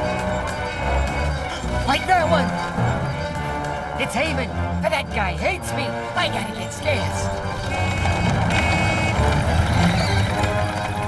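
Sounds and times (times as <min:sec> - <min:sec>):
vehicle rumble: 0:00.0 - 0:11.0.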